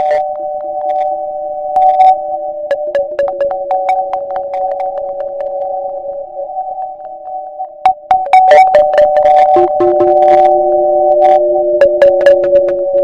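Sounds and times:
sharp clicks and ticks: 2.7 - 10.5, 11.2 - 13.0
synthesizer drone: 2.7 - 13.0.

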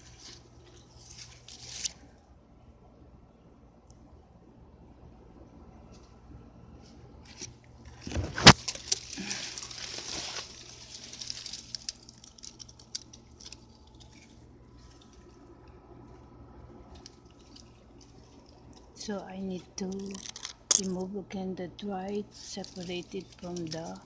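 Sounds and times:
rustling and crackling: 0.0 - 2.2, 5.8 - 21.1, 21.8 - 24.0.

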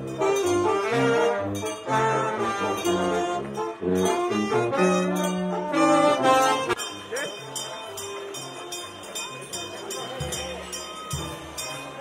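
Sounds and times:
brass band playing: 0.0 - 9.0.

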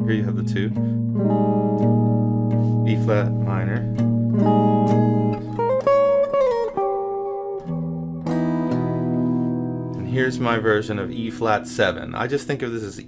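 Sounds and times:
clean electric guitar chords: 0.0 - 13.0.

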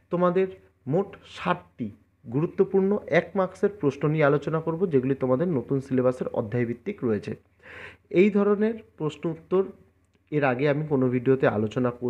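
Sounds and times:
man speaking: 0.0 - 7.5, 8.1 - 12.0
quick breath in: 7.6 - 8.0.

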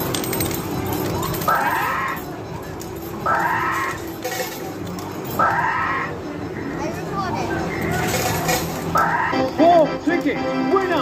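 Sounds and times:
amusement arcade din: 0.0 - 11.0.

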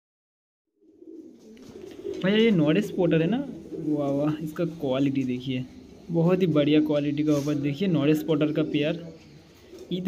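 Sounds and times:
pigeons cooing: 0.8 - 10.0.

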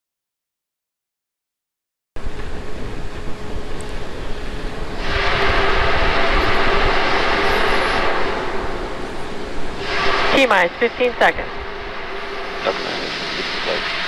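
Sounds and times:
faint steady hum: 2.2 - 14.0
rocket venting vapour hiss: 12.6 - 14.0.

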